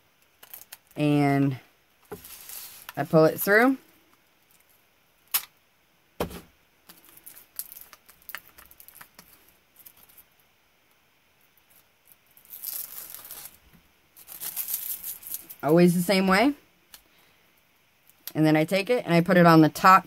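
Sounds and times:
paper rustling: 2.1 - 3.0
paper tearing: 12.6 - 13.6.

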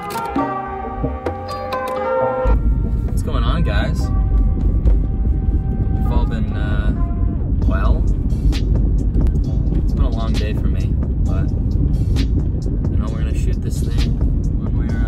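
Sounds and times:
car engine and road noise: 0.0 - 15.0
music: 0.0 - 15.0
voice: 3.2 - 4.1, 6.0 - 7.0, 7.6 - 8.1, 9.9 - 11.5, 12.9 - 15.0.

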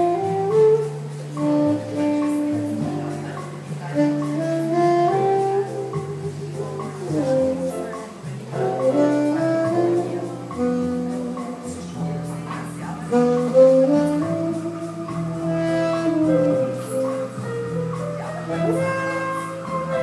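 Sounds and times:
saxophone jazz melody: 0.0 - 20.0
sustained keyboard chords: 0.0 - 20.0.

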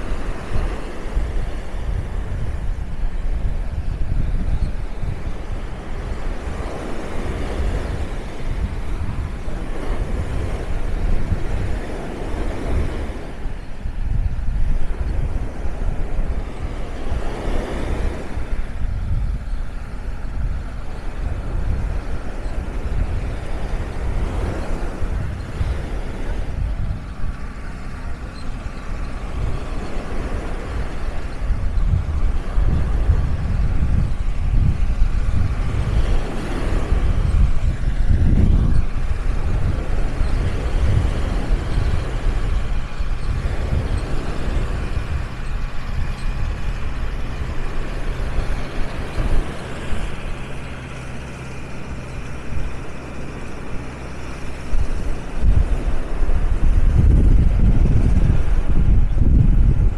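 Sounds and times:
waves washing onto shore: 0.0 - 59.9
wind on microphone: 0.0 - 59.9
tractor engine running: 19.8 - 59.8.

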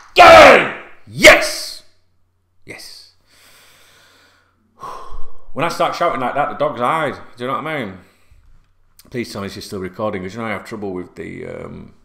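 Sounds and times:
man breathing out heavily: 3.3 - 5.5.

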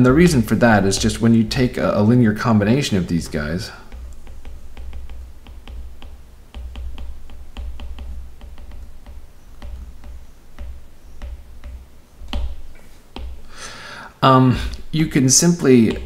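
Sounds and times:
stylus tapping on tablet: 0.0 - 13.7
knock: 3.9 - 13.4.

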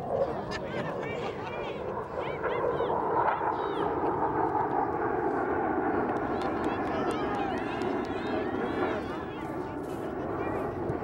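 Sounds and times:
distant chatter: 0.0 - 11.0.

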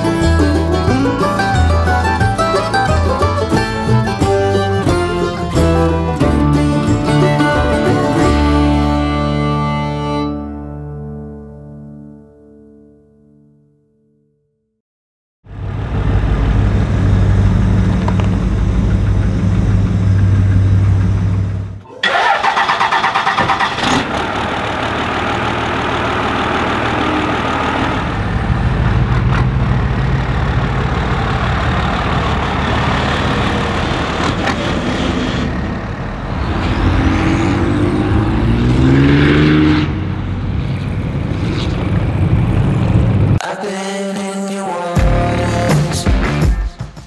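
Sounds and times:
pickup truck engines revving: 0.0 - 10.2, 15.6 - 43.4.

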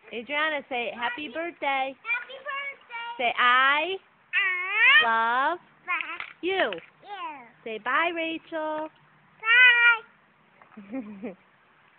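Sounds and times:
toddler high-pitched call: 4.4 - 5.1, 9.4 - 10.1.

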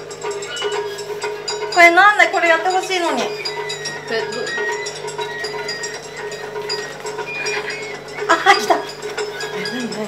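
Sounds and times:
light music with high notes: 0.0 - 10.0.

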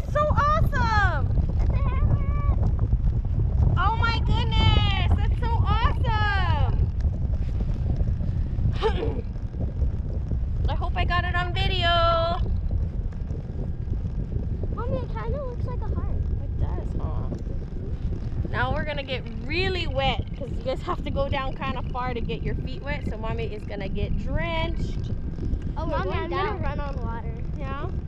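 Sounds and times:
wind rumble on microphone: 0.0 - 28.0.

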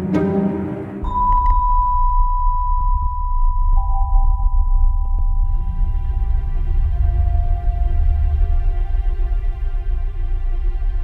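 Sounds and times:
held synth tone: 1.0 - 9.0
pulsing sub-bass: 1.0 - 11.0.

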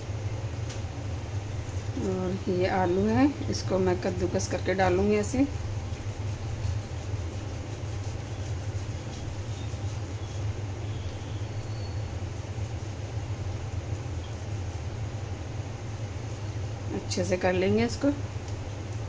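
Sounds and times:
steady low hum: 0.0 - 19.0
potato scraping on metal grater: 3.7 - 11.0.

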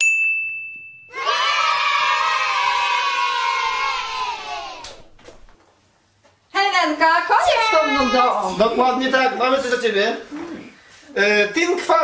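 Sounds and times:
bright ding: 0.0 - 1.2
children cheering: 1.1 - 5.2.

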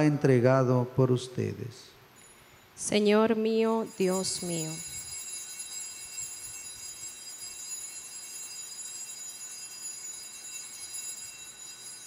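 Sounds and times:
altar bells ringing: 2.1 - 12.0.

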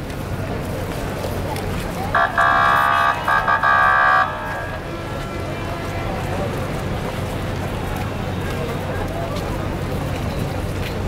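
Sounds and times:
street and crowd noise: 0.0 - 11.0
vehicle horn blasts: 2.2 - 4.4.

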